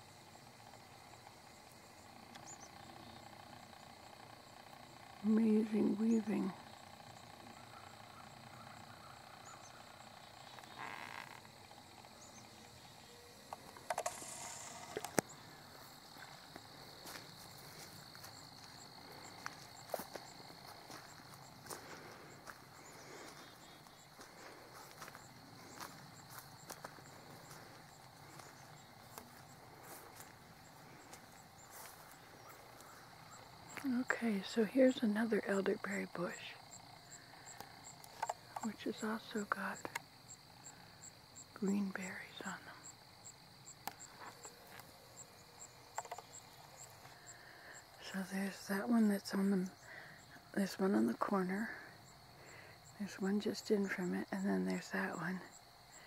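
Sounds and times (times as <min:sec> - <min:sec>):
faint high whine: 0:00.0 - 0:50.8.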